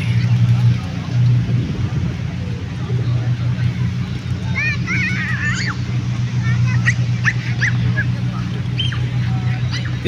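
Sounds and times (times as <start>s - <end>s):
faint voices: 0.0s - 10.0s
road traffic rumble: 0.0s - 10.0s.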